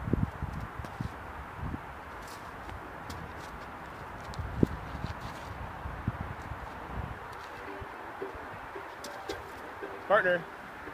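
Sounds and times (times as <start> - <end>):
footsteps: 2.1 - 5.7, 6.4 - 10.1.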